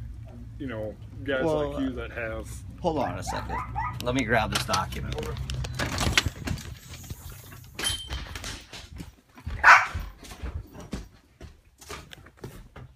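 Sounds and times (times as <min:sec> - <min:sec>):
dog barking: 0:03.0 - 0:04.0, 0:09.6 - 0:10.1.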